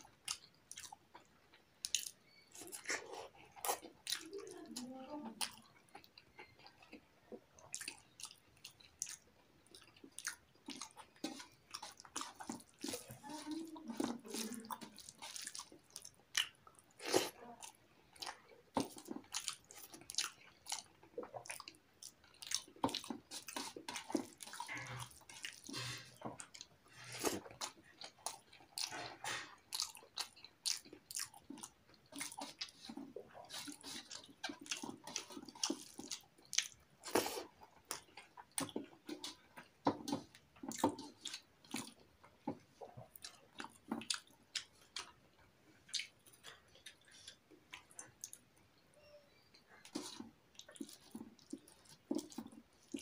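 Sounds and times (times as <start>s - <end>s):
wet chewing and lip smacking: 0.0s - 53.0s.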